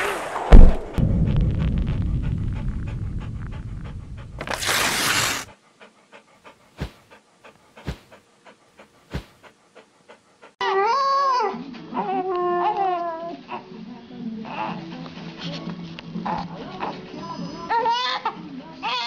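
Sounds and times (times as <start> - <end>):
low rumble: 0.0 - 5.5
whoosh: 0.0 - 5.5.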